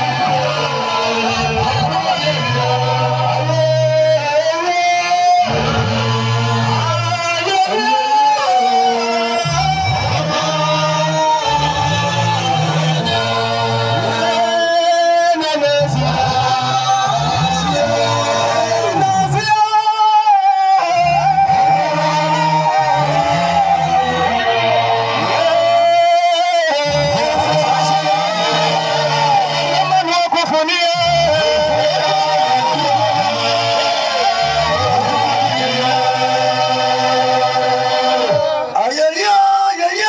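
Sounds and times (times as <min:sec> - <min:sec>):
gospel band music: 0:00.0 - 0:40.0
person singing: 0:00.0 - 0:40.0.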